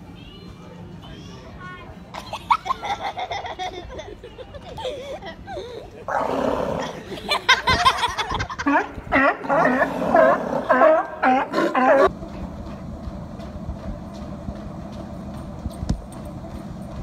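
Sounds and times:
sea lions barking: 8.6 - 12.1
treadmill motor and belt running: 12.0 - 17.0.

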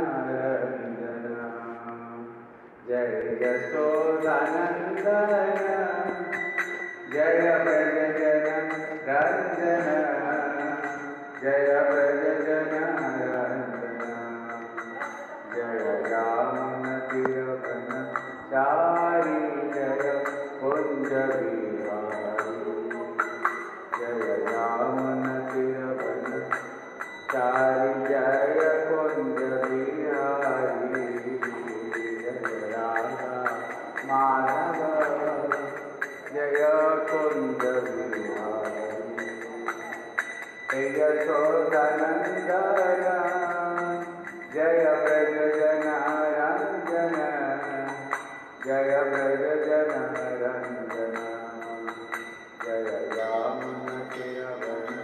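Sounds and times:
man singing devotional chant: 0.0 - 55.0
light regular percussion beat: 3.5 - 55.0.

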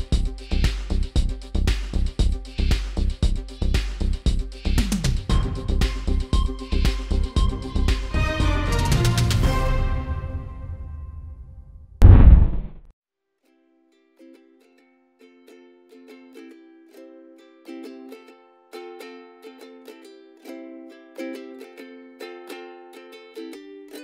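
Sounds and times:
deep boom: 12.0 - 12.8.

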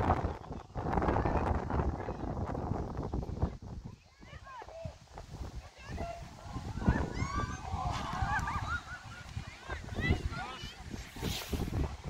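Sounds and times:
wind rumble on microphone: 0.0 - 12.0
high-pitched voices shrieking and cheering: 5.8 - 10.6.

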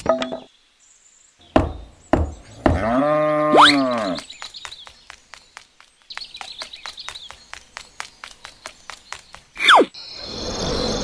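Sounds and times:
hammer knocking on wooden stake: 1.5 - 2.9
cow mooing: 2.8 - 4.2.

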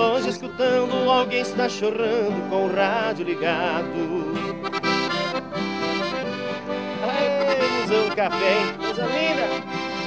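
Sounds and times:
accordion melody: 0.0 - 10.0
strummed acoustic guitar: 0.0 - 10.0.

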